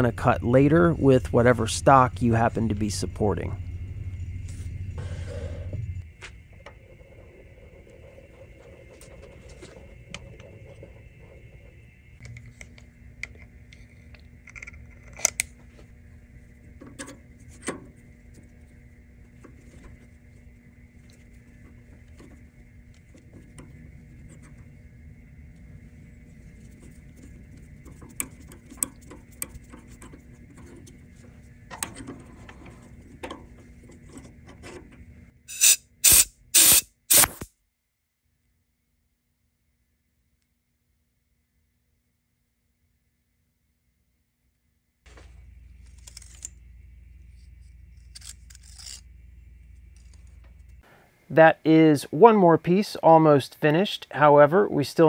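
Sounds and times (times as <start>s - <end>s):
low shop hum: 0.0s - 55.0s
short loud hissing bursts: 35.5s - 37.4s.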